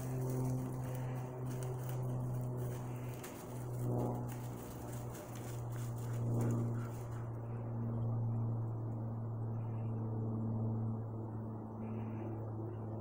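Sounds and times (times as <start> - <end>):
rustling noise: 0.0 - 7.4
steady low hum: 0.0 - 13.0.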